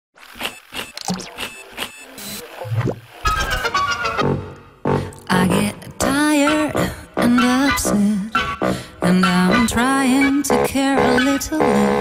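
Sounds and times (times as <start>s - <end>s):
electronic hits and blips: 0.4s - 5.7s.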